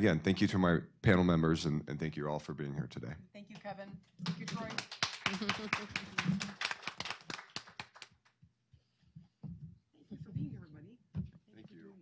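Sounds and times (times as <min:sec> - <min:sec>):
applause: 0:04.2 - 0:08.3.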